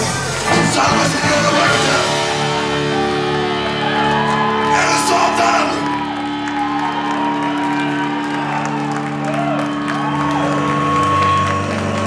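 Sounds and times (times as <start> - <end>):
live metal band chords: 0.0 - 12.0
shouted vocal: 0.5 - 8.1.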